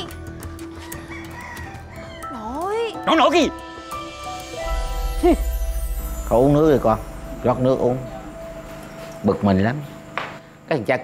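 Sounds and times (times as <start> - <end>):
soft background music: 0.0 - 11.0
faint rooster crowing: 0.6 - 2.6.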